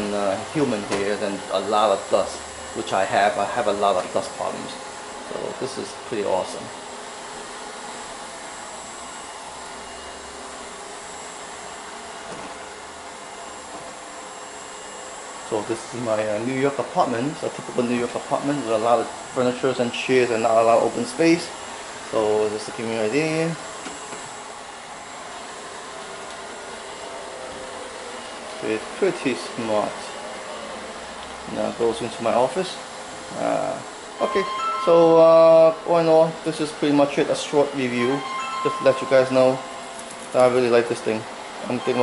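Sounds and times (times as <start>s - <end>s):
faint high whine: 0.0s - 30.9s, 31.5s - 42.0s.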